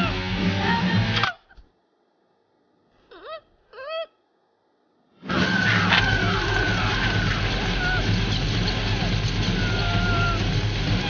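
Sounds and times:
car engine running: 6.2 - 9.7
short cries: 9.4 - 11.0.

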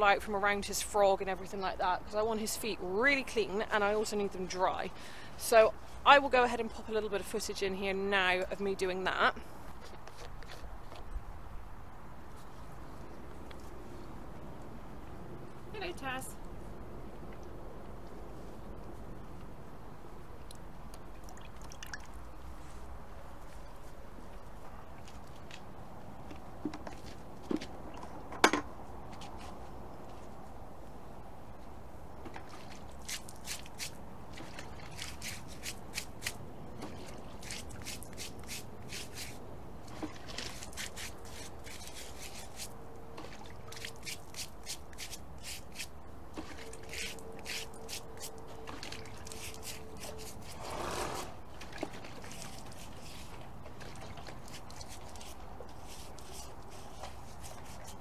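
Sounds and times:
stiff brush scrubbing hoof: 33.0 - 58.0.

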